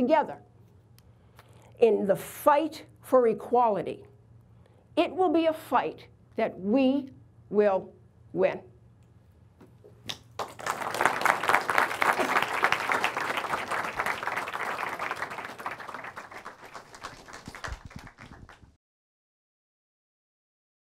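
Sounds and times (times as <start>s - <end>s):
audience applause: 10.4s - 18.7s.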